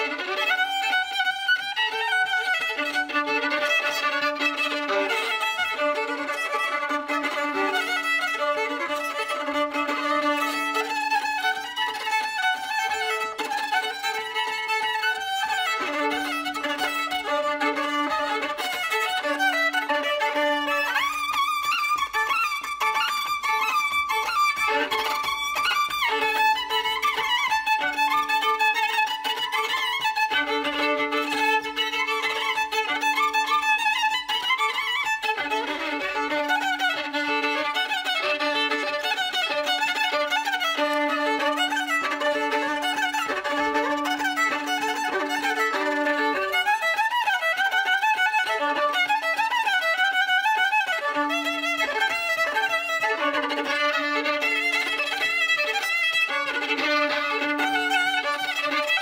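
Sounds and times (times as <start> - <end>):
solo violin folk tune: 0.0 - 59.0.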